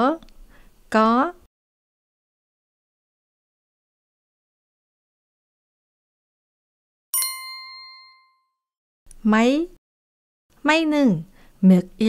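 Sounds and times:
bright chime ringing: 7.2 - 8.4.

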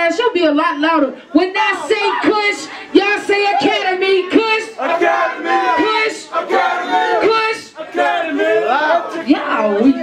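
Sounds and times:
woman rapping loudly: 0.0 - 4.8, 5.8 - 6.3, 7.2 - 7.8.

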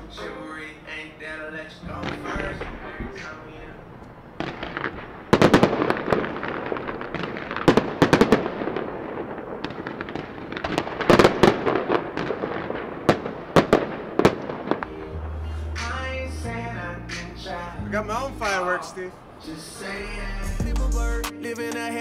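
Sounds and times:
fireworks crackling and popping: 1.9 - 15.2.

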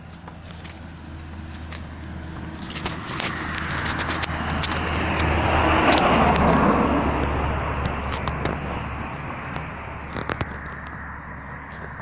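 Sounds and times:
car driving past: 1.0 - 12.0.

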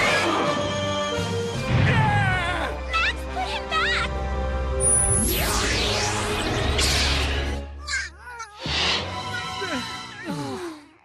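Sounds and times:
background music: 0.0 - 11.0
rushing sound effect: 4.9 - 7.6.

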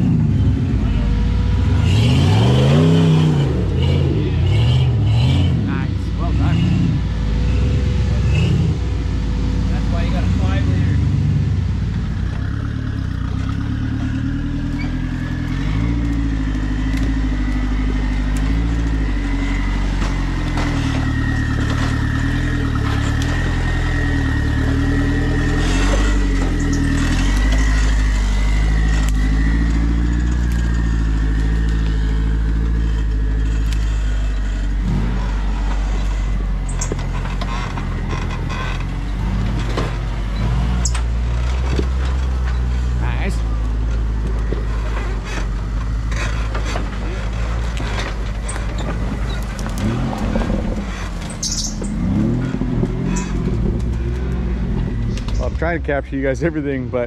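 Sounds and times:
buggy engines revving: 0.0 - 57.0.

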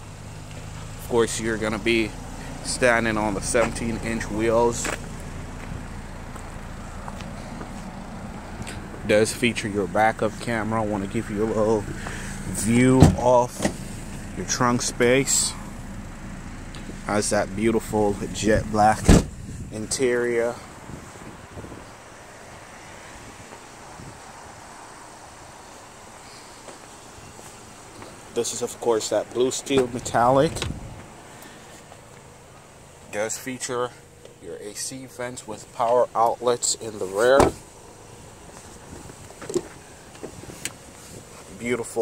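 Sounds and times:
outdoor background hiss: 0.0 - 42.0.

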